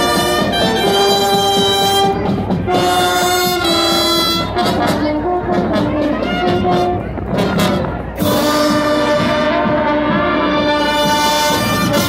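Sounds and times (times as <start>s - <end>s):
brass band playing held chords: 0.0s - 12.0s.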